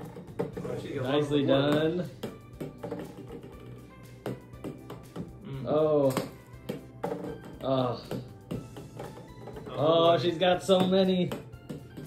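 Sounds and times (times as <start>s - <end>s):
background music: 0.0s - 12.0s
plastic balls knocking on wood: 0.0s - 12.0s.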